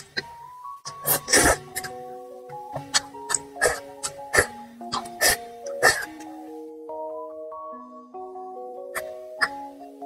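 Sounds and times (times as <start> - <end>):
light background music: 0.0 - 10.0.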